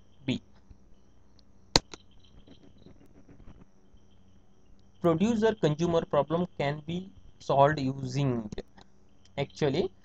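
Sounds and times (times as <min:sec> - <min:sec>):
high-pitched pulsing chirp: 0:00.0 - 0:08.4
faint background noise: 0:00.0 - 0:10.0
mouse click: 0:01.8 - 0:02.0.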